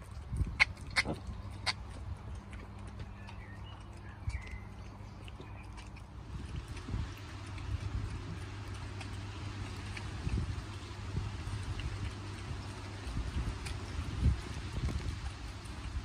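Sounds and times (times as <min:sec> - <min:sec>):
piglets chewing food: 0:00.0 - 0:16.0.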